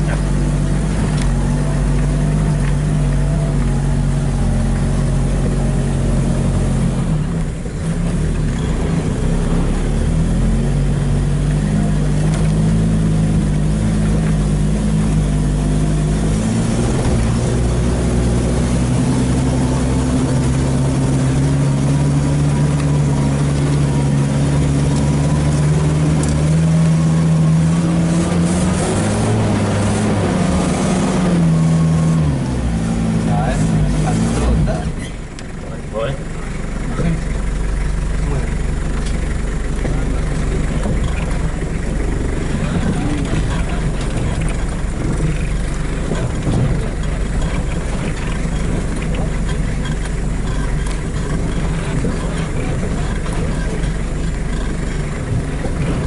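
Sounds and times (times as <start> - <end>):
vehicle engine from inside cabin: 0.0 - 56.0.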